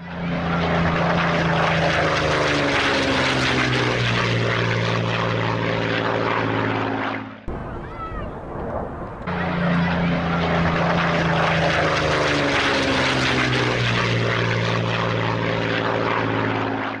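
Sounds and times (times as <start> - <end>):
propeller aircraft engine: 0.0 - 17.0.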